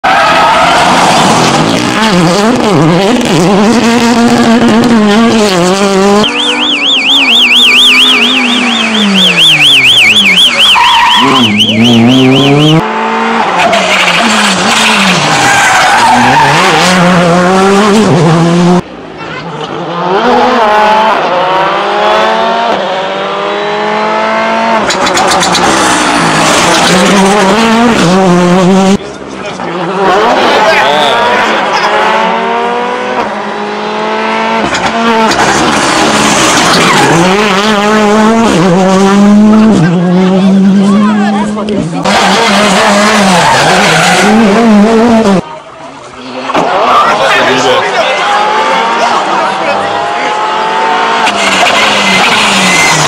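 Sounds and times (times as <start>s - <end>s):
rally cars passing engines revving: 0.1s - 53.0s.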